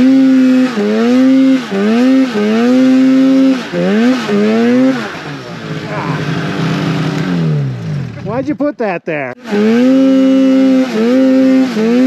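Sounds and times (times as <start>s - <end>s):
snowmobile engine revving: 0.0s - 12.0s.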